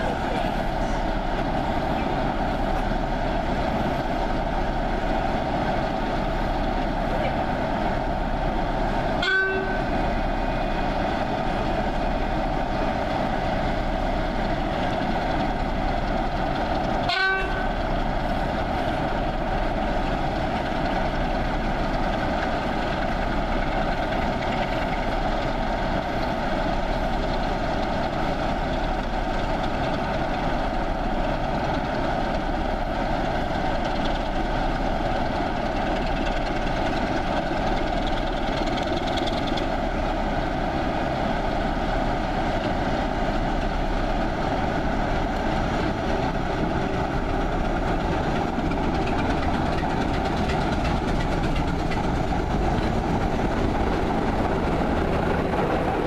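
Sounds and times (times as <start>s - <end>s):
diesel locomotive engine rumble: 0.0s - 56.0s
locomotive horn toots: 9.2s - 9.9s, 17.0s - 17.8s.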